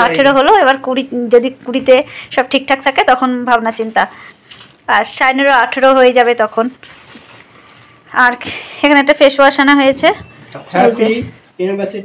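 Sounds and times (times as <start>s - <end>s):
person talking: 9.6s - 11.4s.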